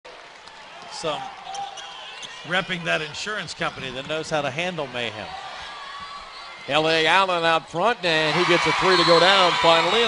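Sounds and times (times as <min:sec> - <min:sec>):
murmur of gym: 0:05.0 - 0:07.3.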